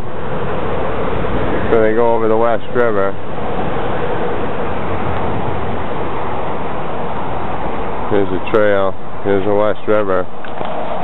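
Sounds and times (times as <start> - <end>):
highway traffic rush: 0.0 - 11.0.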